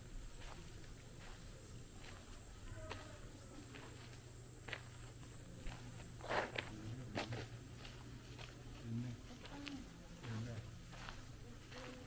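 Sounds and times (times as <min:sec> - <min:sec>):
footsteps on gravel: 0:00.1 - 0:12.0.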